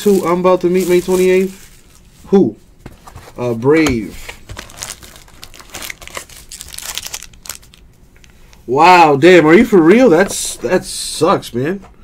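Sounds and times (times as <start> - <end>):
card pack wrappers crinkling: 0.0 - 2.0, 4.0 - 7.9.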